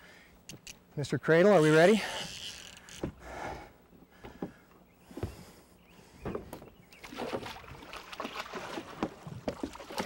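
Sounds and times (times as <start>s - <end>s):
water splashing and sloshing: 6.2s - 10.0s.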